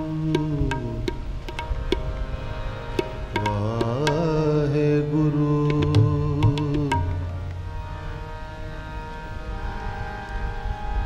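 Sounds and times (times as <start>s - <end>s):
harmonium sustained notes: 0.0s - 11.0s.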